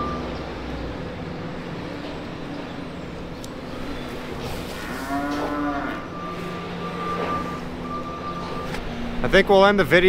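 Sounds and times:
cow mooing: 0:03.7 - 0:07.5.

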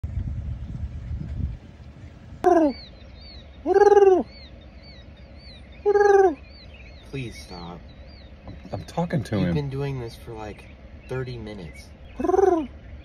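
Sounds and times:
man mimicking bird calls: 0:02.4 - 0:02.9, 0:03.6 - 0:04.3, 0:05.8 - 0:06.4, 0:12.1 - 0:12.8.

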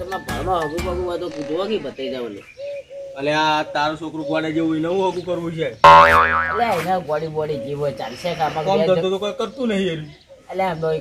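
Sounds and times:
comic boing sound effect: 0:05.9 - 0:06.9.

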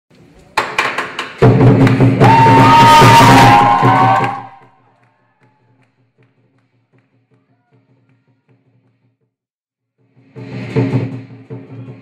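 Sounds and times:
drum and cymbals roll: 0:01.3 - 0:04.6, 0:09.9 - 0:12.0.

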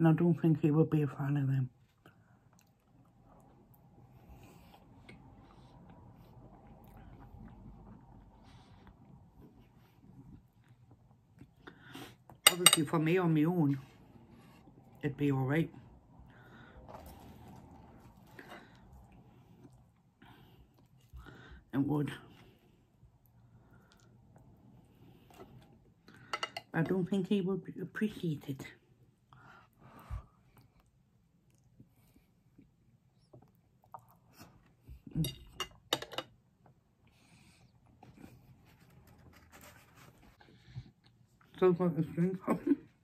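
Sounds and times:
chewing food: 0:02.0 - 0:11.6, 0:30.5 - 0:35.0.

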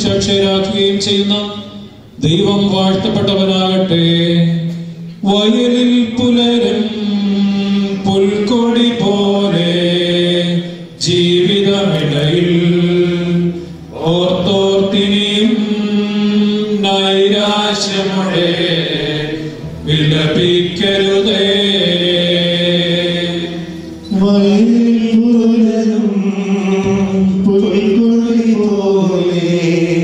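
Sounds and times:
liturgical chant singing: 0:00.0 - 0:30.0.

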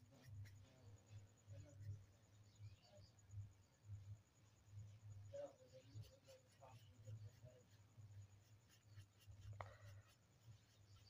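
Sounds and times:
paintbrush scratching on paper: 0:00.0 - 0:02.9, 0:04.5 - 0:11.0.

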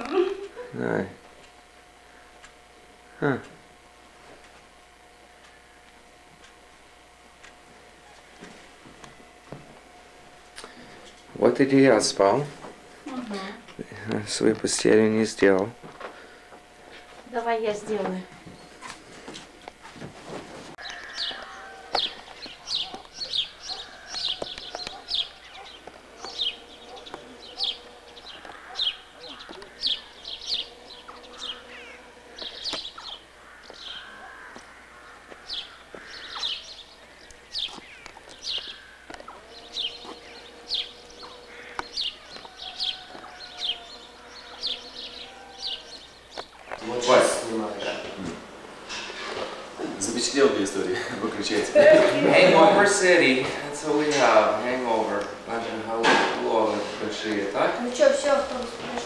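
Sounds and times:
small birds chirping: 0:20.8 - 0:59.0.

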